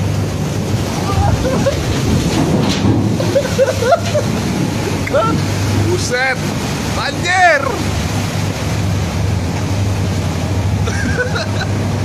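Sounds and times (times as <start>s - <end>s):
sea waves surging: 0.0s - 12.0s
steady low hum: 0.0s - 12.0s.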